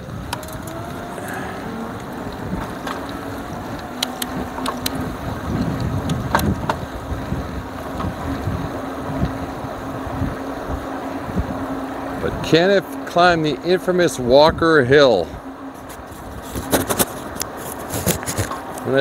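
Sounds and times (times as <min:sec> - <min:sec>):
steady low hum: 0:00.0 - 0:17.8
rolling road noise: 0:00.0 - 0:19.0
wind buffeting microphone: 0:00.0 - 0:19.0.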